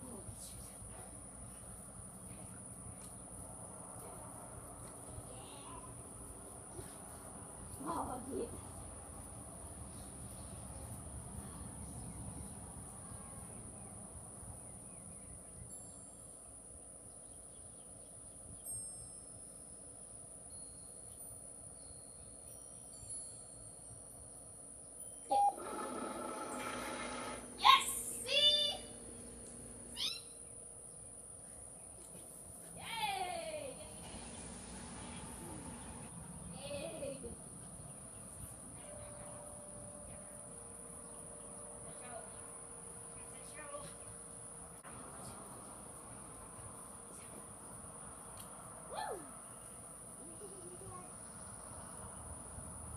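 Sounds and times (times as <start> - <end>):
motor whirring: 25.3 - 30.2
crickets trilling: 26.2 - 32.9, 34.2 - 52.9.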